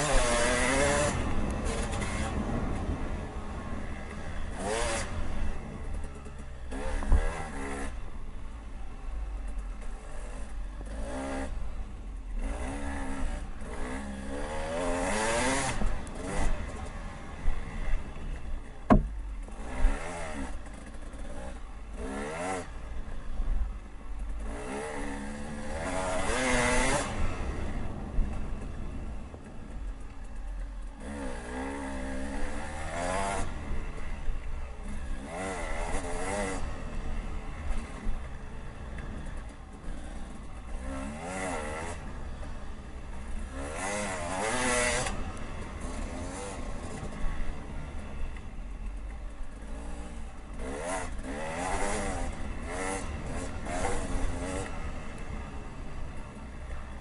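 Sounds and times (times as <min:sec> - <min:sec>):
dirt bike engine revving: 0:00.0 - 0:08.2, 0:09.9 - 0:23.4, 0:24.4 - 0:29.4, 0:30.3 - 0:48.4, 0:49.0 - 0:57.0.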